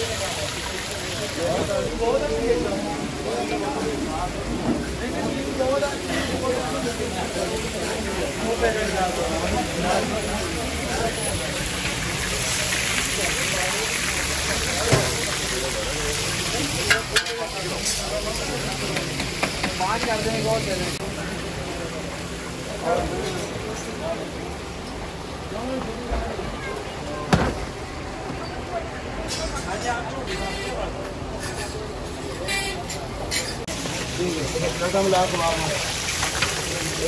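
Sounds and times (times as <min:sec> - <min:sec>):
crowd voices: 0:00.0 - 0:37.0
road traffic: 0:00.0 - 0:37.0
food sizzling in oil: 0:04.8 - 0:25.3, 0:33.4 - 0:37.0.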